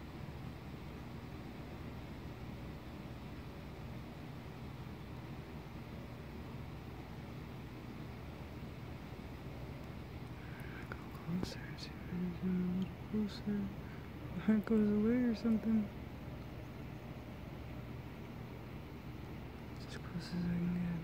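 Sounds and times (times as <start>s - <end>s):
low background rumble: 0.0s - 21.0s
hushed voice speaking: 10.7s - 16.0s, 19.8s - 21.0s.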